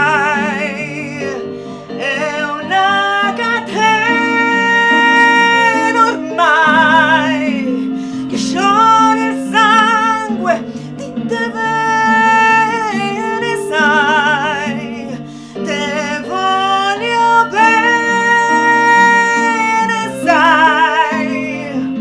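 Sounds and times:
instrumental backing: 0.0 - 22.0
woman singing a slow ballad: 0.0 - 22.0.

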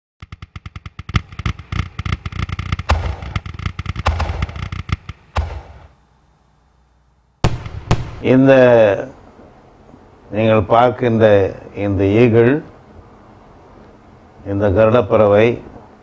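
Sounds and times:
firework bangs: 0.2 - 5.9, 7.4 - 8.3
fireworks crackling pops: 0.2 - 5.9, 7.4 - 8.2.

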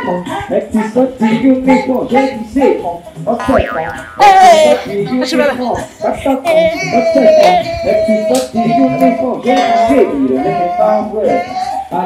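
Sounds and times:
music: 0.0 - 3.5, 4.4 - 12.0
comic boing sound effect: 3.4 - 5.0.

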